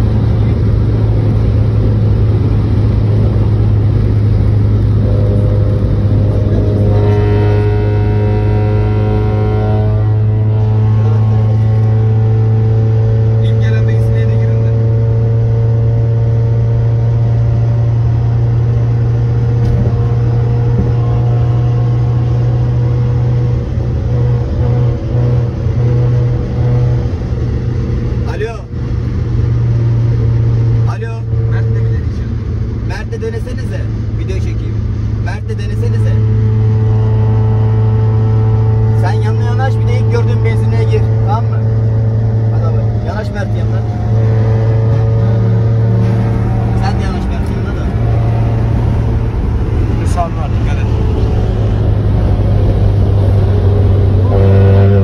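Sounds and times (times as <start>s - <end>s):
car engine droning: 0.0s - 55.0s.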